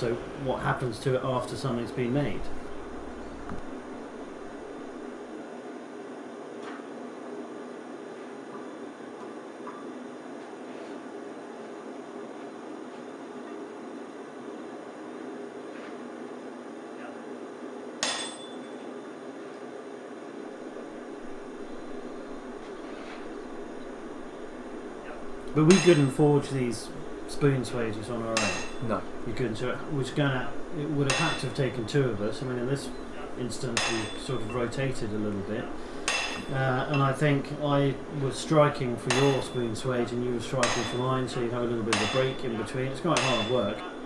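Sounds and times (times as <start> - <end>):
gas forge roaring: 0.0 - 10.3, 19.3 - 44.0
ringing metal clang: 18.0 - 18.9, 25.6 - 26.2, 28.3 - 28.9, 31.1 - 31.6, 33.7 - 34.7, 36.1 - 37.2, 39.1 - 39.7, 40.6 - 44.0.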